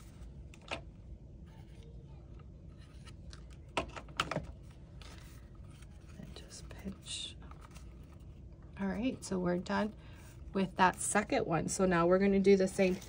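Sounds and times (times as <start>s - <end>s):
paper rustling: 2.7s - 8.4s.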